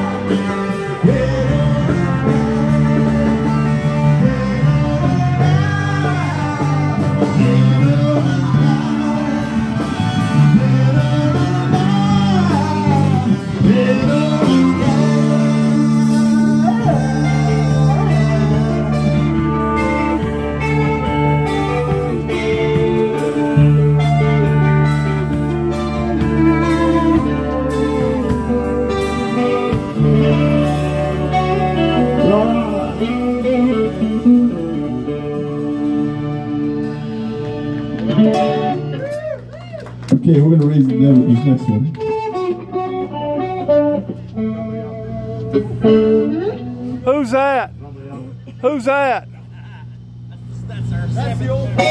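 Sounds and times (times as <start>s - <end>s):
person singing: 0.0s - 36.7s
live band: 0.0s - 47.8s, 48.4s - 51.9s
amplified guitar: 0.0s - 51.9s.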